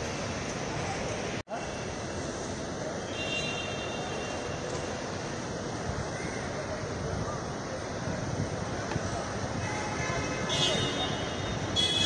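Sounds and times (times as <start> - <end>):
outdoor traffic noise: 0.0 - 12.0.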